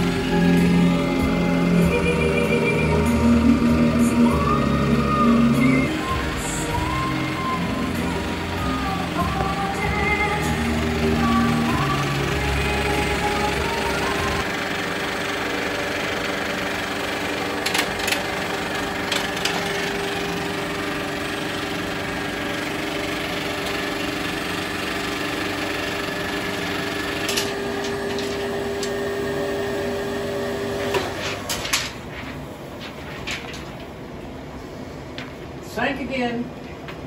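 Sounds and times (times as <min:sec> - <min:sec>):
film projector whirring: 0:00.0 - 0:34.5.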